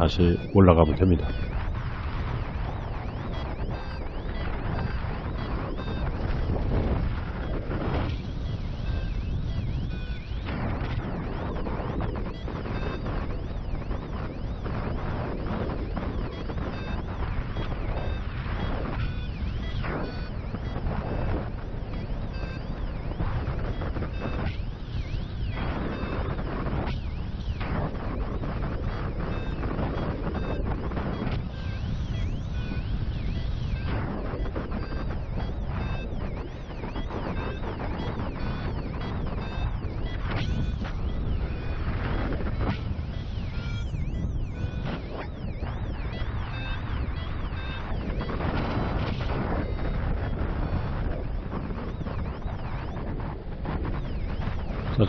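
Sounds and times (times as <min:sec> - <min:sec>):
wind rushing over microphone: 0:00.0 - 0:55.0.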